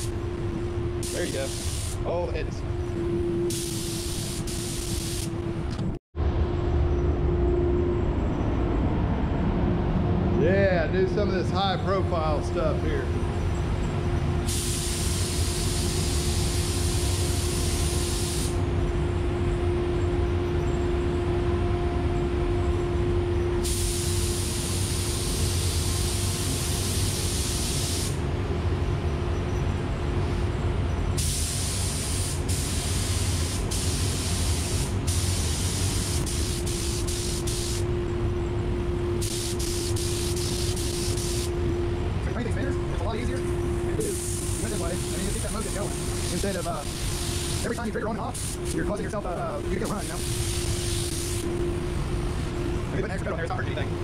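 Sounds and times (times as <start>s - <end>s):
steady hum and low rumble: 0.0s - 54.0s
spray gun hissing: 1.0s - 2.1s, 3.5s - 5.4s, 14.5s - 18.6s, 23.6s - 28.2s, 31.2s - 37.9s, 39.2s - 41.5s, 44.0s - 48.8s, 49.8s - 51.5s.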